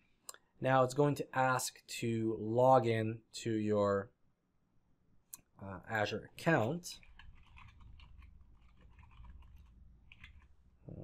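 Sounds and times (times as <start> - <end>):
rapid keyboard typing: 6.5 - 10.6.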